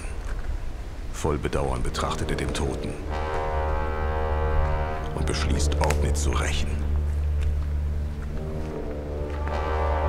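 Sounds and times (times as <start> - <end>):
deep drone: 1.3 - 10.0
low synthesizer chord: 1.9 - 10.0.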